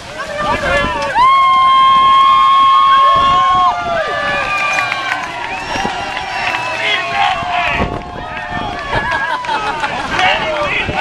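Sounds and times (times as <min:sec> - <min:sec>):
crowd shouting and cheering: 0:00.1 - 0:11.0.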